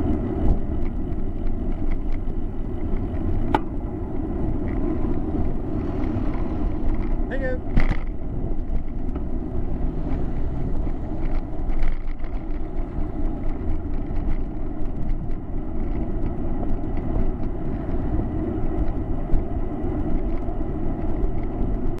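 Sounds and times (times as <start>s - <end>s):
small clicks and rattles: 0.0s - 9.4s, 10.0s - 22.0s
road rumble: 0.0s - 22.0s
wind noise: 0.0s - 22.0s.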